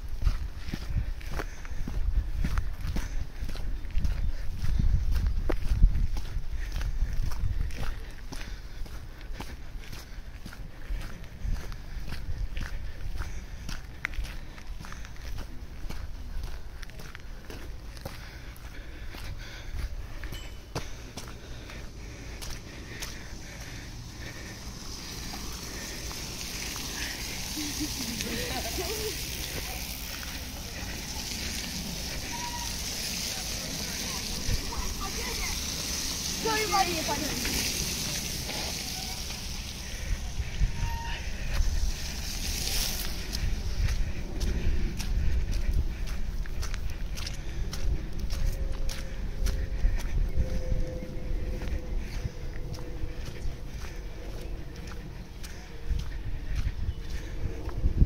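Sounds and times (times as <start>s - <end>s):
footsteps on muddy gravel: 0.0s - 58.0s
bike tyres hissing through mud: 17.7s - 58.0s
riders calling out: 20.3s - 45.2s.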